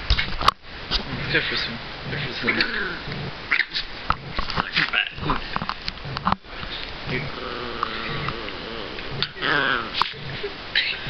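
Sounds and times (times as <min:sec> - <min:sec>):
small dog snarling and growling: 0:01.0 - 0:11.0.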